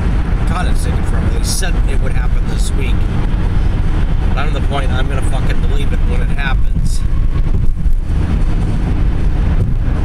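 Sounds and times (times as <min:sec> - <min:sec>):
road and engine rumble: 0:00.0 - 0:10.0
wind noise on microphone: 0:00.0 - 0:10.0.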